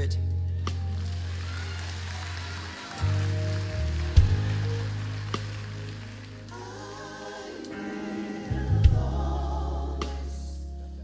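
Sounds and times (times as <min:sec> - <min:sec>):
gospel choir singing with band: 0:02.9 - 0:11.0.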